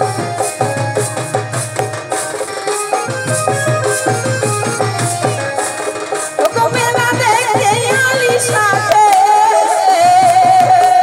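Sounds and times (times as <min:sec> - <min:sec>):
barrel drums beating: 0:00.0 - 0:09.3.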